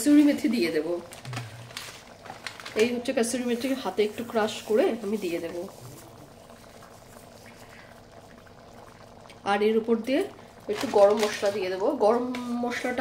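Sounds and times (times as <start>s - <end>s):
curry bubbling in a pan: 0.0s - 13.0s
woman talking: 9.5s - 13.0s.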